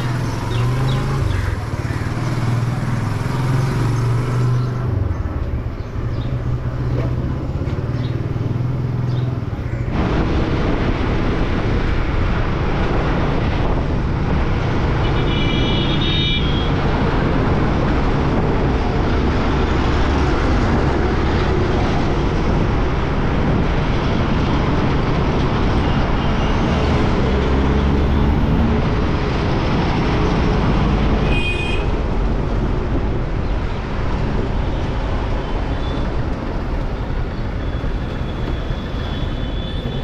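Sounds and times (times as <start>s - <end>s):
motorcycle engine: 0.0s - 5.3s
wind rushing over microphone: 8.2s - 16.0s, 16.7s - 37.4s.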